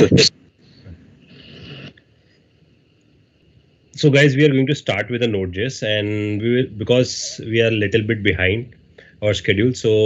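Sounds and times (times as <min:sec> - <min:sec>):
man speaking: 0:00.0 - 0:00.3, 0:04.0 - 0:10.0
faint high whine: 0:00.0 - 0:10.0
faint microphone line hiss: 0:00.0 - 0:10.0.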